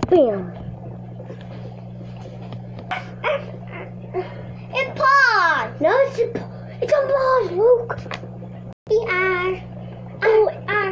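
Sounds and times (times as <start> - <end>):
low electrical hum: 0.0 - 10.9.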